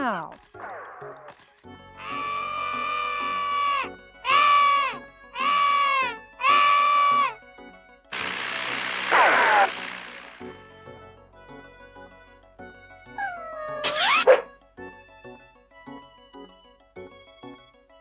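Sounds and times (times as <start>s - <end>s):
whining cartoon voice wailing: 2.0s - 7.4s, 13.2s - 14.5s
hissing screechy burst: 5.4s - 7.3s, 8.2s - 10.5s.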